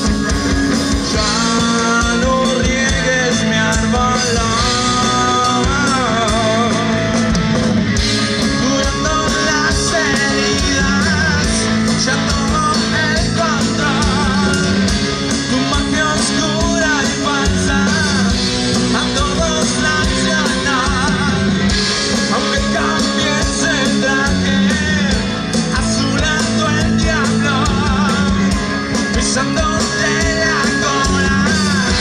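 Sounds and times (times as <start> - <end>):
drum kit: 0.0 - 32.0
electric guitar: 0.0 - 32.0
man singing: 0.8 - 7.4, 8.1 - 32.0.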